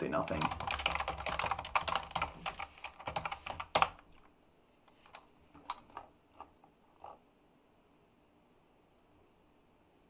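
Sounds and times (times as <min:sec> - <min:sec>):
computer keyboard keystrokes: 0:00.3 - 0:04.2.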